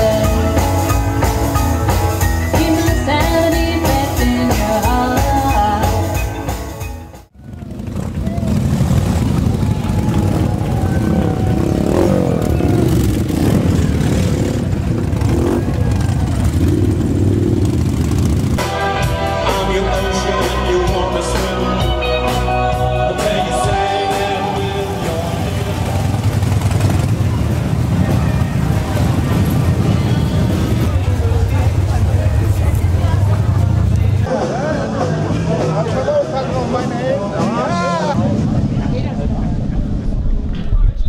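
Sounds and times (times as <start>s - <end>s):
live band with singing: 0.0s - 6.9s, 18.6s - 26.4s, 29.7s - 38.7s
motorcycles riding past: 7.4s - 18.7s, 22.7s - 34.3s.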